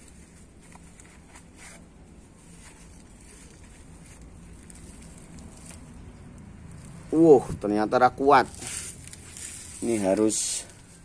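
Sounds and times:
soil crumbling and scratching: 0:00.0 - 0:11.0.

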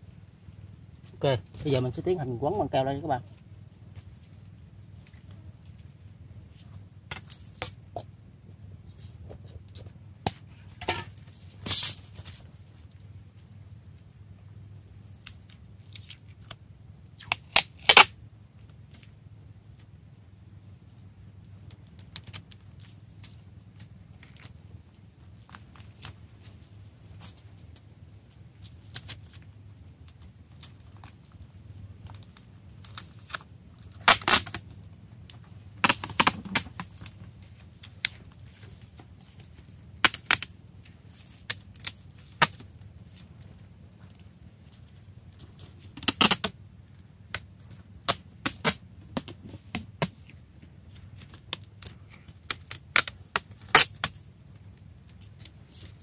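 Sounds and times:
handling sounds: 0:08.8 - 0:13.5
tape ripped off a roll: 0:10.2 - 0:12.4, 0:15.2 - 0:18.2, 0:32.2 - 0:34.8, 0:35.8 - 0:37.3, 0:37.9 - 0:43.3, 0:45.4 - 0:46.6, 0:47.3 - 0:54.3.

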